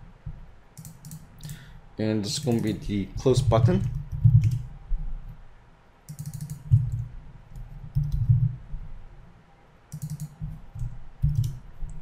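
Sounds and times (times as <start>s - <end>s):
computer keyboard typing: 0.8s - 1.6s, 2.4s - 4.7s, 6.1s - 8.5s, 9.9s - 12.0s.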